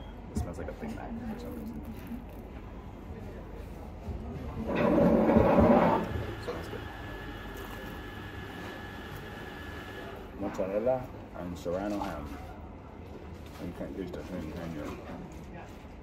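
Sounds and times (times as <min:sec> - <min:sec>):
cafe background noise: 0:00.0 - 0:16.0.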